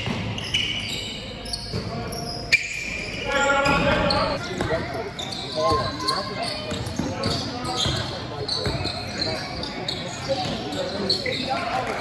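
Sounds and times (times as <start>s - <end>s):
basketball bouncing on court: 0.0s - 0.5s, 6.6s - 9.0s
sneakers squeaking: 0.0s - 12.0s.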